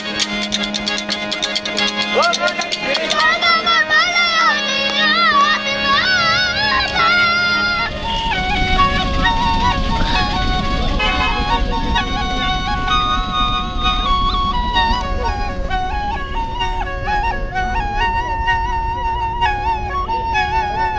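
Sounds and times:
double flute melody: 0:00.0 - 0:20.9
harmonium drone: 0:00.0 - 0:20.9
boy singing with vibrato: 0:02.4 - 0:12.8.

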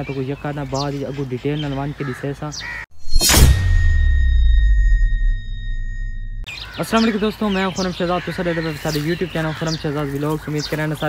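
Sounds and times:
birds chirping: 0:00.0 - 0:02.9, 0:05.9 - 0:11.0
deep bass rumble: 0:03.2 - 0:06.5.

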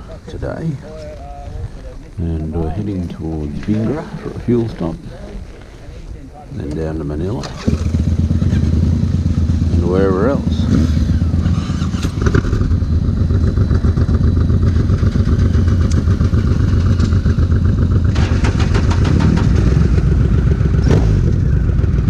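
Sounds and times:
other motorcycles idling: 0:02.7 - 0:22.0
motorcycle engine idling: 0:06.1 - 0:22.0.

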